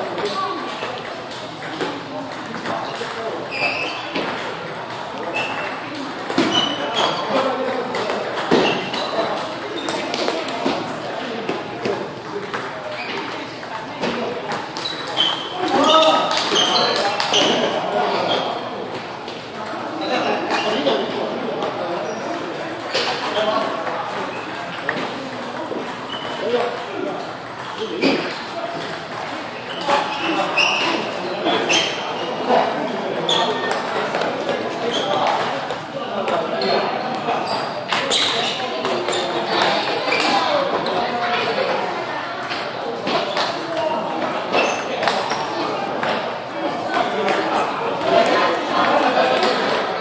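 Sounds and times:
echoing background chatter: 0.0 - 50.0.

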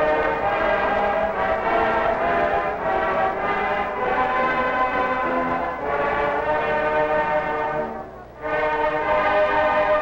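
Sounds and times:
marching band brass chords: 0.0 - 10.0.

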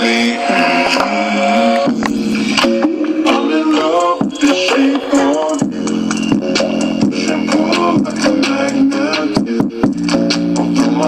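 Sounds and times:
pop song with sung vocals: 0.0 - 11.0.

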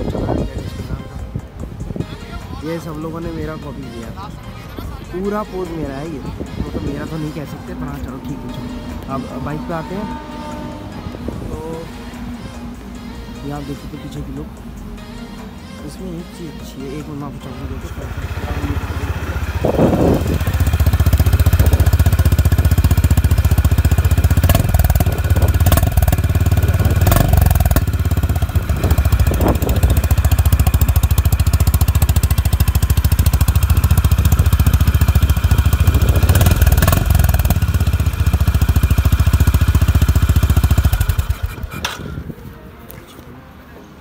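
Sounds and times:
motorcycle engine idling: 17.4 - 42.0.

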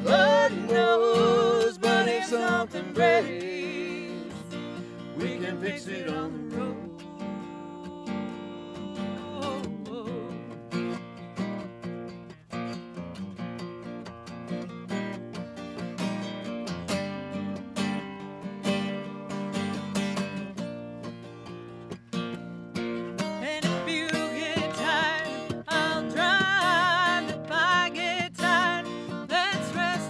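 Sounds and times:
acoustic guitar strumming: 0.0 - 30.0.

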